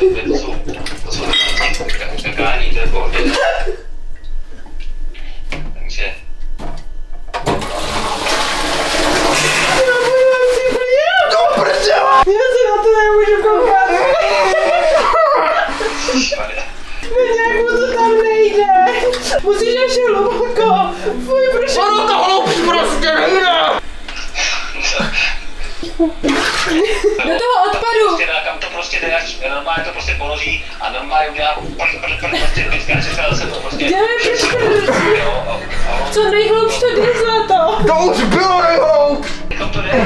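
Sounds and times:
toilet flushing water rushing: 7.4s - 12.2s, 13.6s - 17.0s, 26.2s - 28.2s, 30.2s - 40.0s
water splashing and gurgling: 26.2s - 26.9s.

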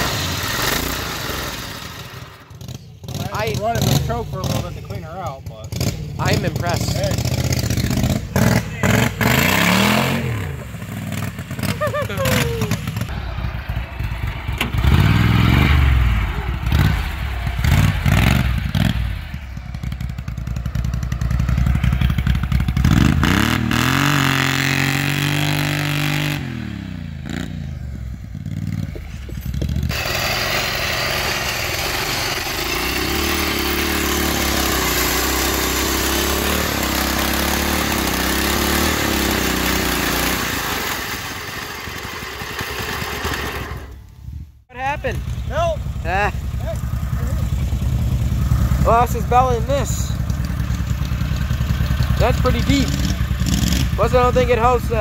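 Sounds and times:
small engines revving: 0.0s - 44.1s, 44.9s - 55.0s.

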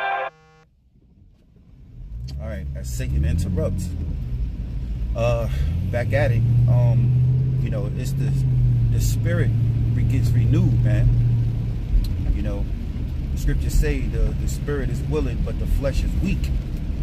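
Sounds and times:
wavering higher sounds: 0.0s - 0.4s
car engine and road noise: 0.0s - 17.0s.

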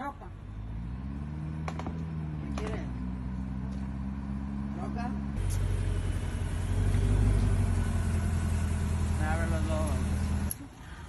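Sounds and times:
car engine low rumble: 0.0s - 10.7s.

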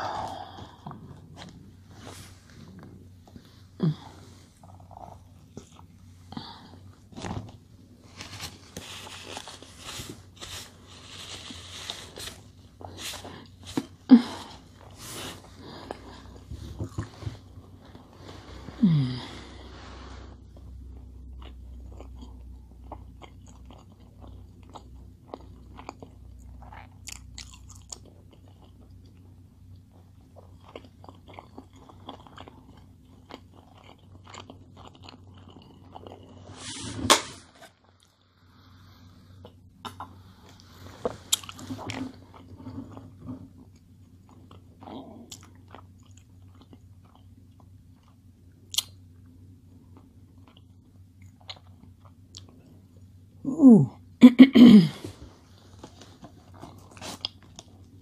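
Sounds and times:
chewing and biting burger: 20.8s - 36.5s.

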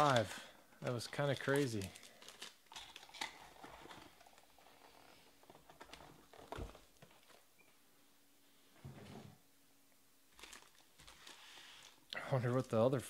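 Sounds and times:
foil wrappers crinkling: 0.0s - 7.4s, 10.3s - 12.0s.

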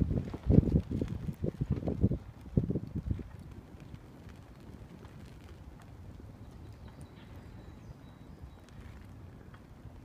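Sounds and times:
campfire crackling and popping: 0.0s - 10.0s.

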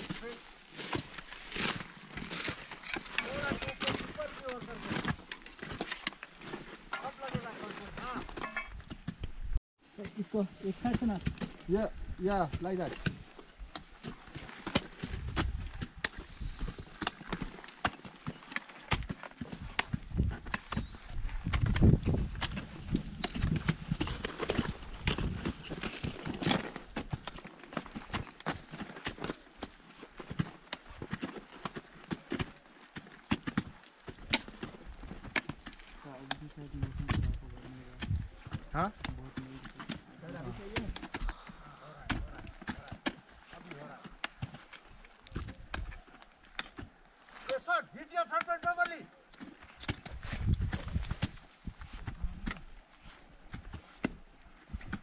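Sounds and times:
ice axes and crampons striking ice: 0.0s - 52.8s, 53.4s - 55.0s.

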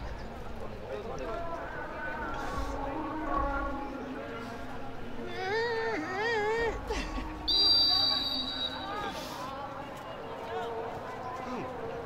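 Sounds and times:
referee's whistle blast: 7.5s - 9.1s.

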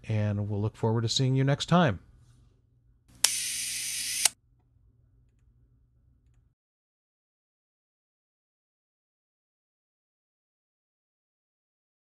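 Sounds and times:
camera shutter click: 3.2s - 4.4s
camera whirring hiss: 3.2s - 4.4s.

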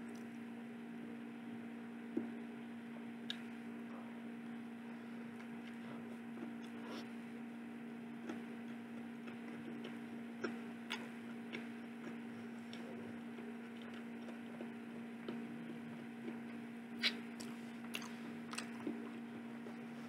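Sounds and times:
steady low hum: 0.0s - 20.0s
person chewing: 5.3s - 7.0s, 8.2s - 19.9s
soft mouth clicks: 17.0s - 18.7s.

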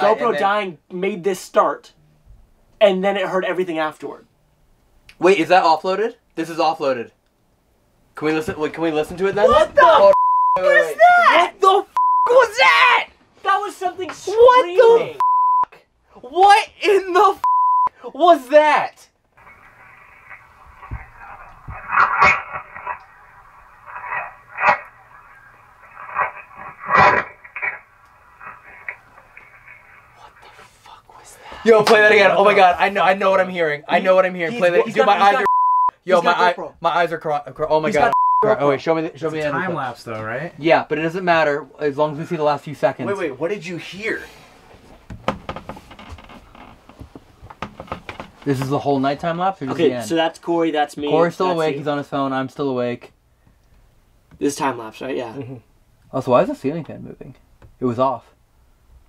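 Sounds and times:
speaker hiss and hum: 0.0s - 59.0s.

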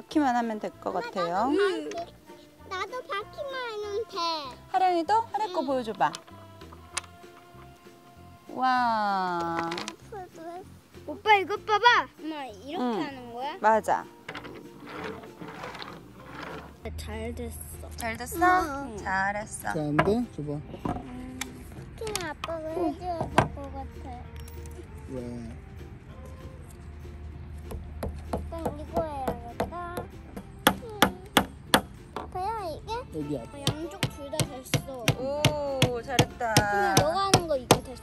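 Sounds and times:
wood rattling on a table: 14.3s - 16.8s
hammer striking wood: 27.7s - 32.3s.

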